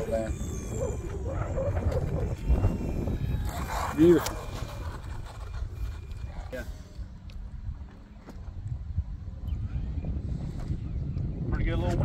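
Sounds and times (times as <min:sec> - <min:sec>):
faint rising whine: 0:00.0 - 0:11.7
wind buffeting microphone: 0:00.0 - 0:12.0.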